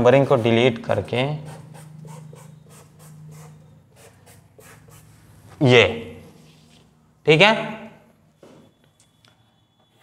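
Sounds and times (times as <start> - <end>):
writing strokes on a board: 1.4 - 5.3.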